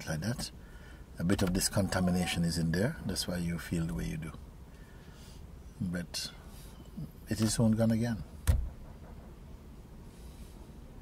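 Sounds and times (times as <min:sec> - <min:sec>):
room background noise: 0:00.0 - 0:11.0
man speaking: 0:01.2 - 0:04.4, 0:05.8 - 0:06.4, 0:07.0 - 0:08.3
short thump: 0:08.4 - 0:09.3.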